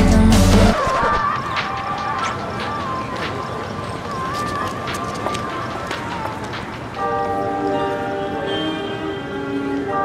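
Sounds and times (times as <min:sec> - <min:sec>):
ringing bell-like chimes: 0:06.9 - 0:10.0.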